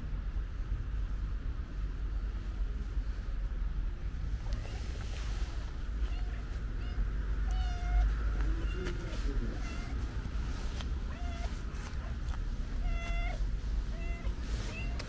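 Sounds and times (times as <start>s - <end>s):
cat meowing: 4.4s - 5.2s, 5.9s - 10.1s, 11.0s - 15.0s.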